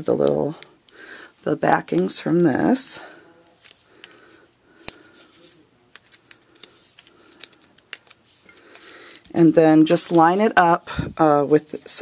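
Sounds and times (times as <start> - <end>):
paper rustling: 3.4 - 9.3.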